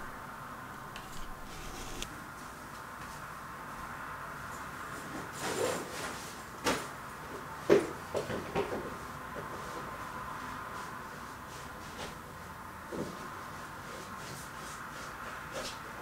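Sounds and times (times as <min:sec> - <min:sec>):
steady background hum: 0:00.0 - 0:16.0.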